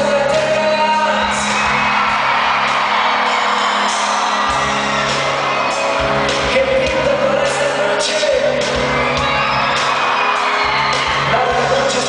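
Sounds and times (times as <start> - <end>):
crowd whooping and singing along: 0.0 - 12.0
live rock band playing: 0.0 - 12.0.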